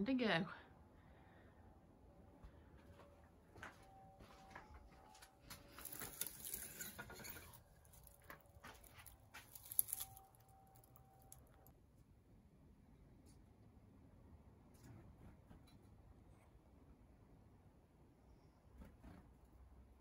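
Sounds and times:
artificial wreath rustling: 4.2s - 11.7s.

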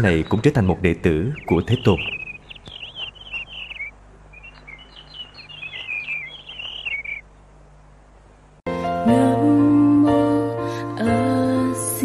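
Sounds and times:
small birds chirping: 0.0s - 8.6s
music: 8.7s - 12.0s.

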